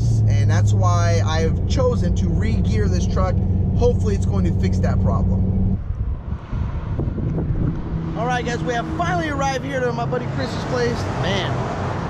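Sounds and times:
steady low engine hum: 0:00.0 - 0:11.5
low vehicle rumble: 0:00.0 - 0:12.0
wind buffeting microphone: 0:01.0 - 0:10.0.

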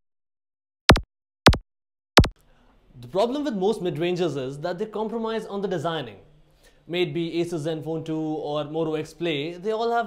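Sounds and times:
sharp click-like pops: 0:00.9 - 0:01.6.

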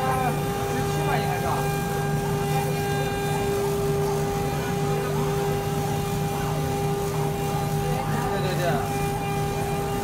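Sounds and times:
laser cutter mechanical hum: 0:00.0 - 0:10.0.

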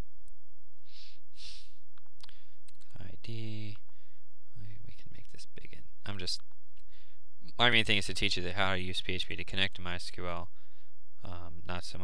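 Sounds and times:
low electrical hum: 0:00.0 - 0:12.0
short breathy hisses: 0:00.9 - 0:01.7.

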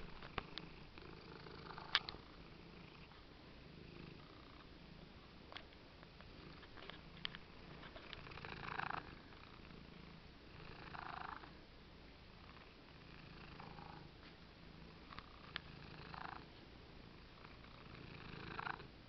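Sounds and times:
cat purring: 0:00.0 - 0:11.6, 0:12.3 - 0:19.0.

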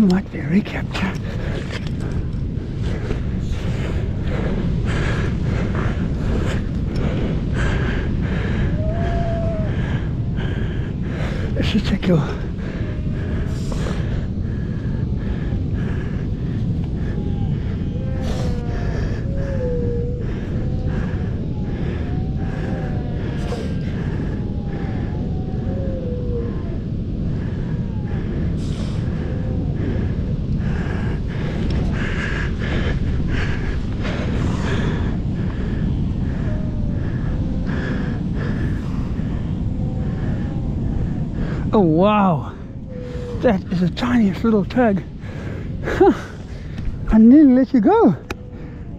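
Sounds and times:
wind buffeting microphone: 0:00.0 - 0:48.9
faint wavering animal calls: 0:01.1 - 0:48.9.

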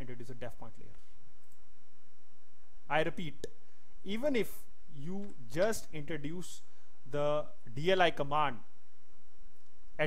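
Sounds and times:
man speaking: 0:00.0 - 0:01.0, 0:02.9 - 0:08.7
background hiss: 0:00.0 - 0:10.0.

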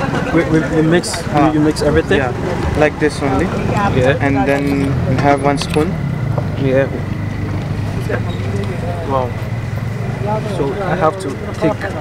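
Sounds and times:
low engine hum: 0:00.0 - 0:12.0
men talking: 0:00.0 - 0:12.0.

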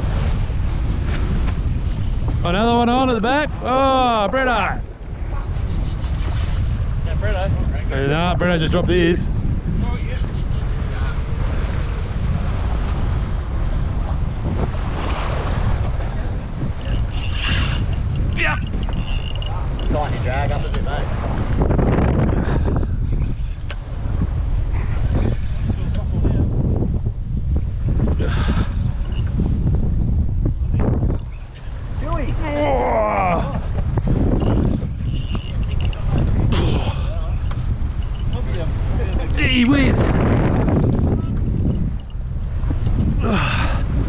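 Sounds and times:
waves washing against hull: 0:00.0 - 0:44.0
wind buffeting microphone: 0:00.0 - 0:44.0.

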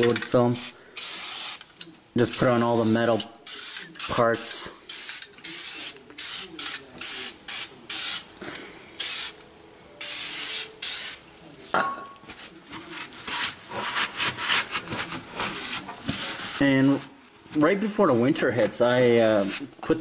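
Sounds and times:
aerosol can spraying: 0:01.0 - 0:01.7, 0:02.4 - 0:04.2, 0:04.9 - 0:08.3, 0:09.0 - 0:09.4, 0:10.0 - 0:11.2
rag rubbing: 0:12.3 - 0:20.0.

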